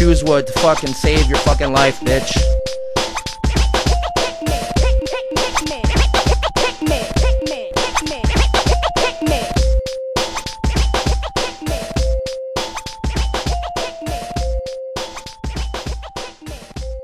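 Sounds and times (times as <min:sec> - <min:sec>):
turntable scratching: 0:00.0 - 0:09.6, 0:10.2 - 0:12.1
instrumental hip hop beat: 0:00.0 - 0:17.0.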